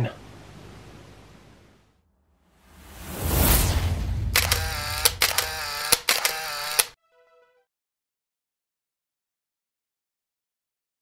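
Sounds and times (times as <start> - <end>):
falling whoosh: 2.6 - 4.8
sharp shutter-like clicks: 4.4 - 7.0.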